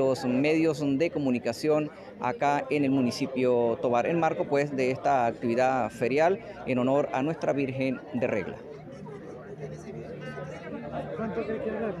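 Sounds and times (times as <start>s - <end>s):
indistinct background chatter: 0.0s - 12.0s.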